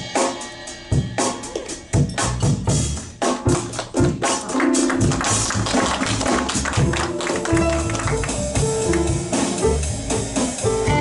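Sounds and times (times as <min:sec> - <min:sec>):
jazz quartet playing blues: 0:01.9 - 0:11.0.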